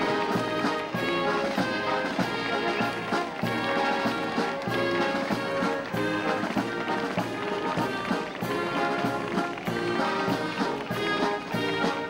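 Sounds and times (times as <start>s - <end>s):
brass playing tune: 0.0s - 12.0s
military band playing march: 0.0s - 12.0s
steady drum beat: 0.0s - 12.0s.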